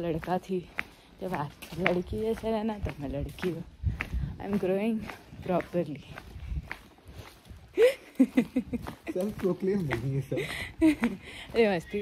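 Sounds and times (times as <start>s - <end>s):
woman's voice: 0.0s - 6.3s, 10.8s - 12.0s
footsteps: 0.0s - 12.0s.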